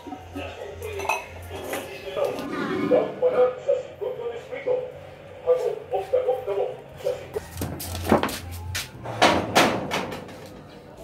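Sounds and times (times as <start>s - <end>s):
faint music or humming: 0.0s - 11.0s.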